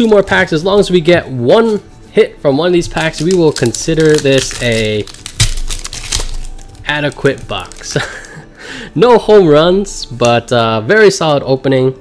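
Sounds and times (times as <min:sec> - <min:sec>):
foil wrapper crinkling and tearing: 0:02.8 - 0:08.4
sharp crack of wrapper: 0:02.9 - 0:08.4.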